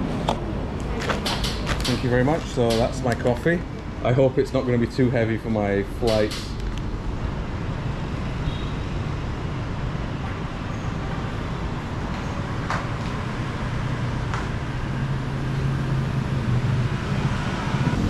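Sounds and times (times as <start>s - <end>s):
low engine hum: 0.0s - 18.0s
street traffic rumble: 0.0s - 18.0s.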